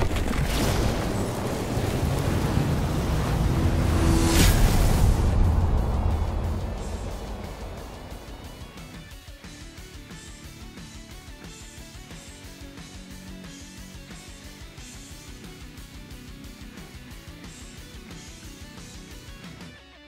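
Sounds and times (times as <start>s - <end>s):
deep noisy swell: 0.9s - 9.2s
sharp whoosh hit: 2.4s - 9.1s.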